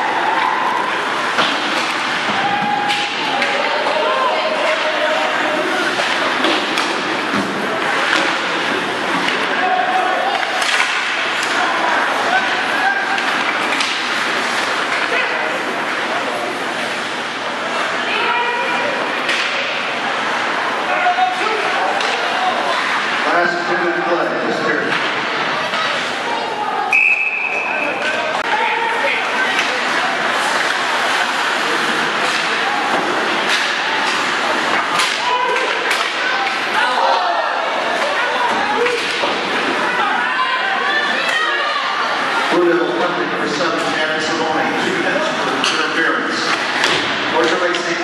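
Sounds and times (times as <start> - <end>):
crowd voices calling out: 0.0 - 48.0
spectators talking: 0.0 - 48.0
shrill whistle blast: 26.9 - 27.8.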